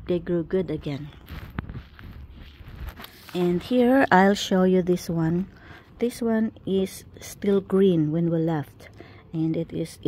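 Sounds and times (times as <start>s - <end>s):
wind rumble on microphone: 0.8s - 3.0s.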